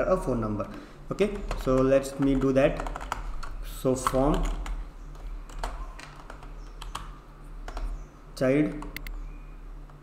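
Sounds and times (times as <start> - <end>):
low steady hum: 0.0 - 10.0
computer keyboard keystrokes: 1.2 - 7.9, 8.7 - 9.2.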